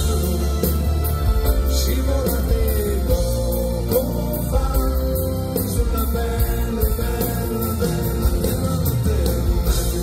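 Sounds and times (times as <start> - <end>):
live pop ballad band: 0.0 - 10.0.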